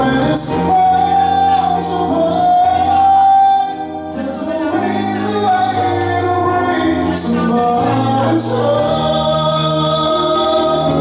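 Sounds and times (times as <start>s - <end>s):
band accompaniment: 0.0s - 11.0s
person singing slow song: 0.0s - 11.0s.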